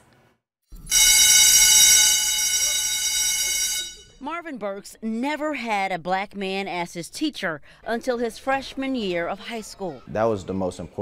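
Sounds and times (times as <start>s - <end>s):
bright synthesized tone: 0.8s - 4.2s.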